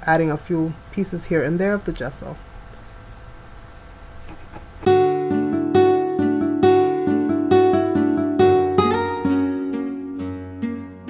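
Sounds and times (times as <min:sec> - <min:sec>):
low steady hum: 0:00.0 - 0:04.8
plucked guitar music: 0:04.9 - 0:11.0.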